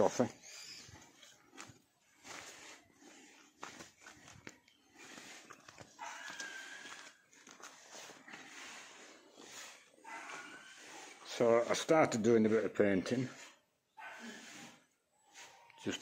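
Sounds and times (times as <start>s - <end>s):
footsteps on gravel path: 1.0s - 10.7s.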